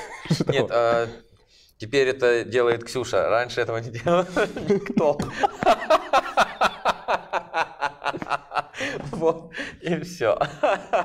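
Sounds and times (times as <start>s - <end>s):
men laughing hard: 0.0s - 0.8s, 4.0s - 9.5s, 10.4s - 11.0s.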